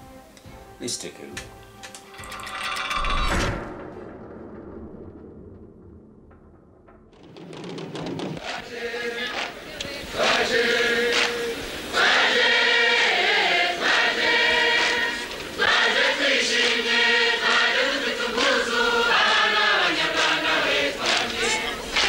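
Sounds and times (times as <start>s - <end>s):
chorus singing in unison: 8.2s - 22.0s.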